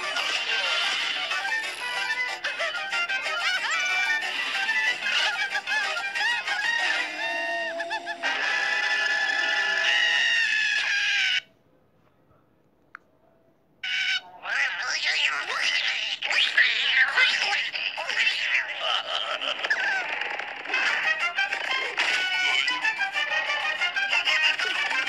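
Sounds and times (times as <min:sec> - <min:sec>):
cartoon background music: 0:00.0 - 0:11.4, 0:19.6 - 0:25.0
cartoon voices screaming: 0:05.0 - 0:11.5, 0:13.8 - 0:20.3.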